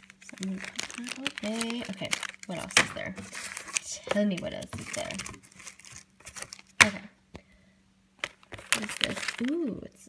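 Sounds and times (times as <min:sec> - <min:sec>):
plastic wrapping rustle: 0:00.0 - 0:06.9, 0:08.2 - 0:10.0.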